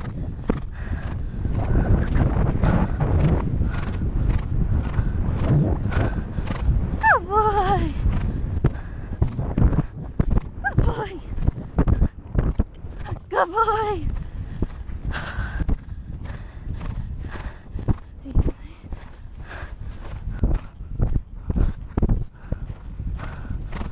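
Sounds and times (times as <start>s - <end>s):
horse hoofbeats on grass: 0.0s - 23.9s.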